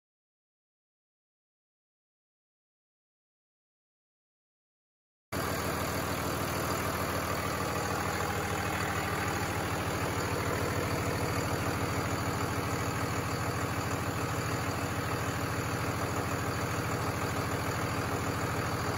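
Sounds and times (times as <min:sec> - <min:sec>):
diesel engine idling: 0:05.4 - 0:18.9.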